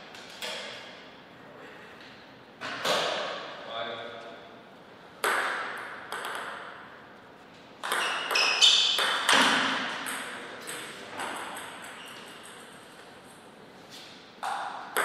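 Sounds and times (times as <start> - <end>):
table tennis ball hits: 5.2 - 6.9, 7.8 - 12.8, 14.4 - 15.0.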